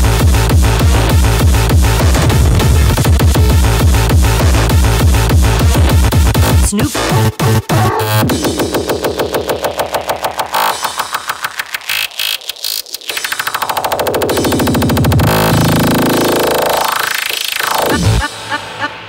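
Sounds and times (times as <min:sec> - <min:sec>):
stuttering repeated hits: 0:00.0 - 0:07.6, 0:08.2 - 0:18.8
electronic hardcore dance music: 0:00.0 - 0:19.0.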